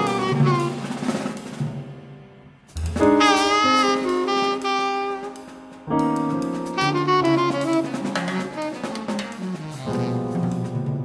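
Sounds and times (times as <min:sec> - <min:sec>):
tenor saxophone: 0:00.0 - 0:01.0, 0:03.0 - 0:05.8, 0:06.7 - 0:10.6
drum kit: 0:00.0 - 0:11.0
piano: 0:00.0 - 0:11.0.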